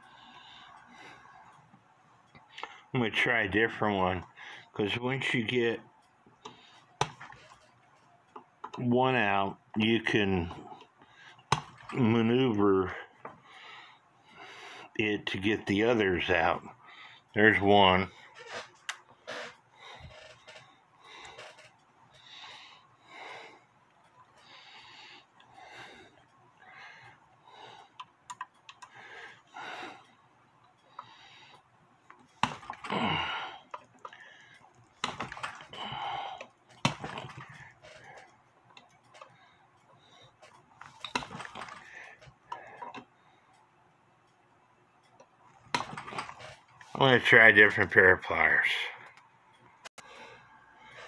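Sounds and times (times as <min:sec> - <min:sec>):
person breathing: 0:00.0 - 0:01.6, 0:13.0 - 0:15.0, 0:19.3 - 0:28.0, 0:28.8 - 0:30.2, 0:32.8 - 0:34.7, 0:35.3 - 0:36.6, 0:50.0 - 0:51.0.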